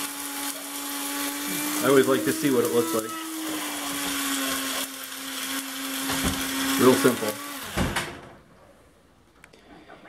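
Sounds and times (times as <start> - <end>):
coffee grinder spinning down: 0.0 - 8.0.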